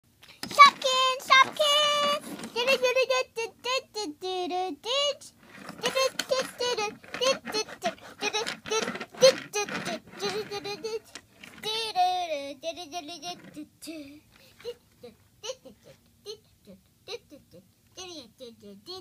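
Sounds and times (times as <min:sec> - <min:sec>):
child speaking and singing: 0:00.5 - 0:11.0, 0:17.1 - 0:19.0.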